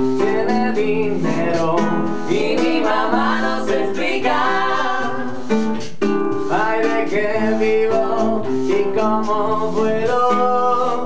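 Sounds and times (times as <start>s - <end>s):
person singing: 0.0s - 5.4s, 6.5s - 11.0s
classical guitar strummed: 0.0s - 11.0s.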